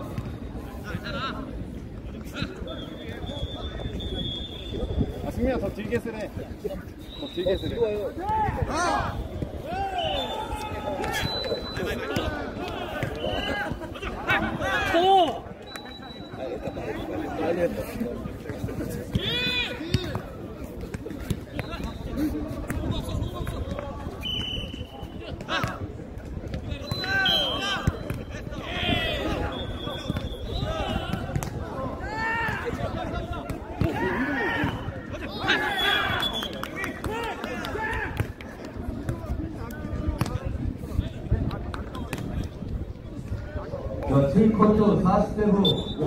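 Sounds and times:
players shouting calls: 7.0 - 17.7, 19.0 - 20.4, 26.7 - 38.3, 44.1 - 46.0.

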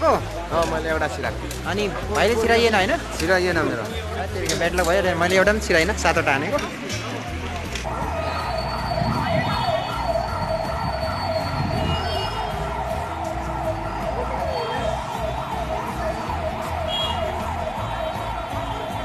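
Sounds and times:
siren wailing in fast yelp: 7.9 - 19.0.

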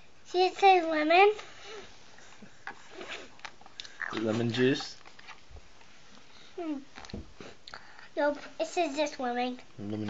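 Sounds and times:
child humming: 6.6 - 6.9.

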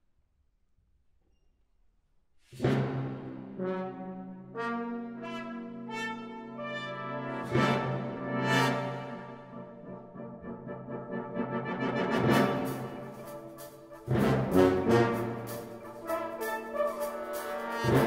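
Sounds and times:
brass band playing chords: 2.6 - 18.0.

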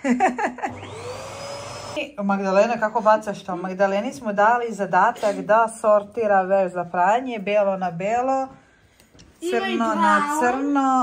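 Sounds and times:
vacuum cleaner motor whine: 0.7 - 2.0.

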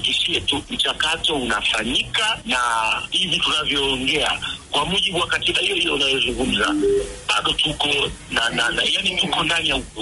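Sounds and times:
man talking on phone: 0.0 - 10.0.

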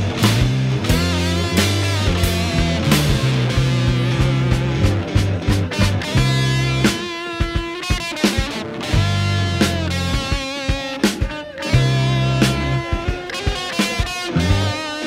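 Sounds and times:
bass guitar: 0.0 - 15.0
drums: 0.0 - 15.0
electric guitar: 0.0 - 15.0.

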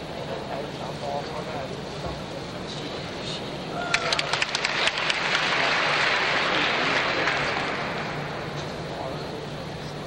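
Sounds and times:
audience applauding: 4.0 - 7.8.

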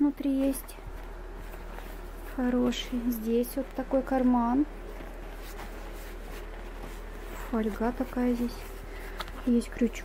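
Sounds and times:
synthetic jacket rustling: 0.0 - 10.0.

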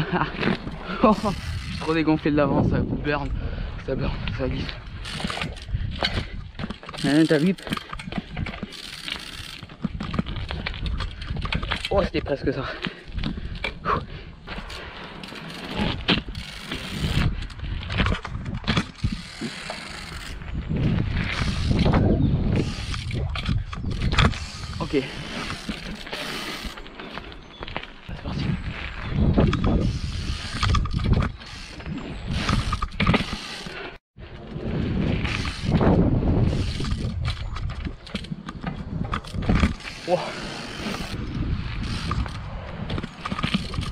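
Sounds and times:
bike clicks knocks and rattles: 4.8 - 13.8, 14.5 - 27.9, 29.2 - 43.9.

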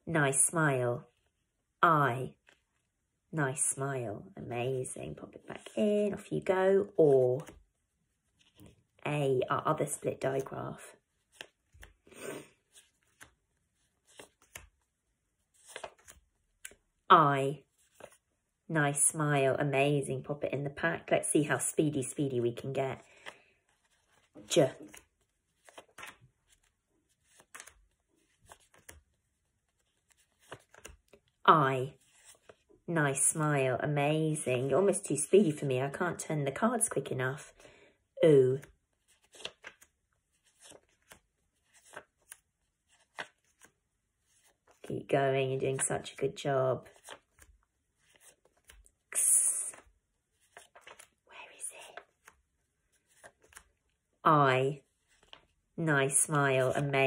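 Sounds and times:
paper flashcards rustling: 5.3 - 9.0, 9.8 - 16.9, 17.6 - 18.3, 22.0 - 32.8, 38.5 - 54.0, 54.8 - 55.6.

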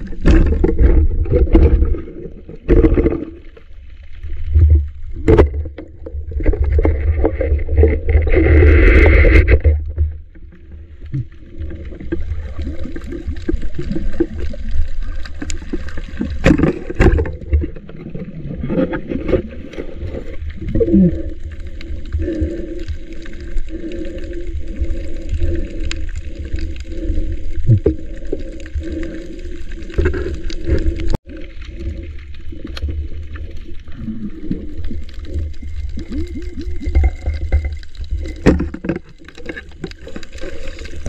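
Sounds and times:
bubbling and gurgling water: 0.0 - 41.0
muffled underwater rumble: 0.0 - 41.0.

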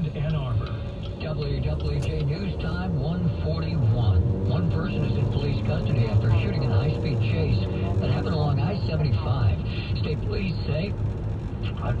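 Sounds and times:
talk radio voice over speakers: 0.0 - 11.0, 11.6 - 12.0
car road noise rumble: 0.0 - 12.0.

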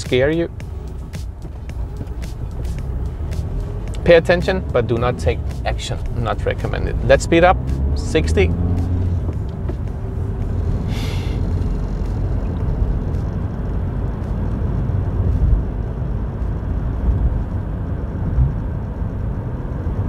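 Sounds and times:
car tyres and engine rumble: 0.0 - 20.0
brief hiss: 10.9 - 11.4.

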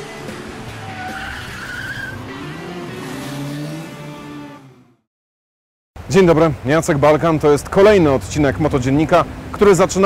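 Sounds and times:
music: 0.0 - 2.9
car engine revving: 0.0 - 5.1
tyres squealing: 0.6 - 4.5.

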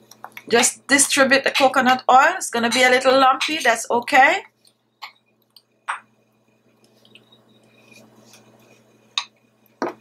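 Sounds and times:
spoon scraping thick paste: 7.2 - 9.0.

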